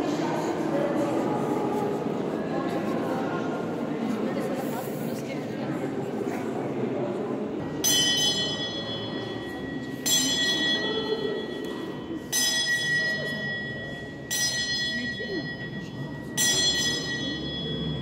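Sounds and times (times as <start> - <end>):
bell ringing: 7.8 - 18.0.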